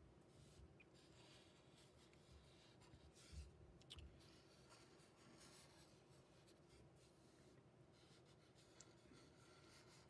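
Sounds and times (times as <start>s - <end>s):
marker scratching on paper: 4.2s - 10.0s.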